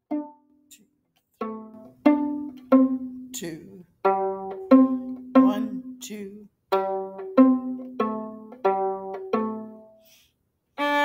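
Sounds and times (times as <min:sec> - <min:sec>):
viola plucked notes: 0:00.0 - 0:10.1, 0:10.8 - 0:11.0.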